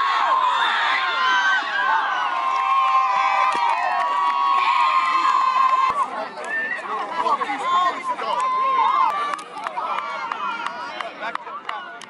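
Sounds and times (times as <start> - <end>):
sharp claps: 8.3 - 12.0.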